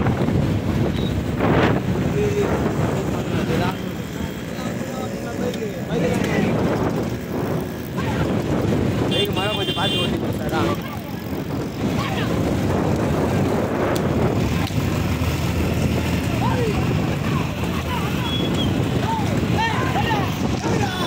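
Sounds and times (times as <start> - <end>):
wind noise on microphone: 0.0 - 4.1, 5.9 - 21.0
motorcycle and scooter engines: 0.0 - 21.0
people shouting: 16.3 - 21.0.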